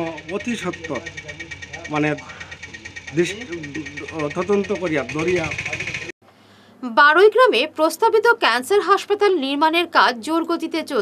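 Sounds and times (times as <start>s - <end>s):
pulsing background drone: 0.0s - 6.2s.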